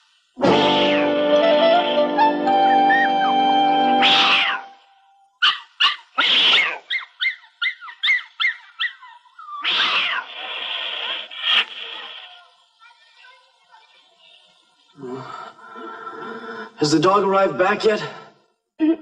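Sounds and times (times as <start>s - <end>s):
cat hissing: 0.4s - 1.9s, 4.0s - 4.8s, 5.4s - 12.6s
background music: 0.4s - 4.8s
short high cries: 0.4s - 5.6s.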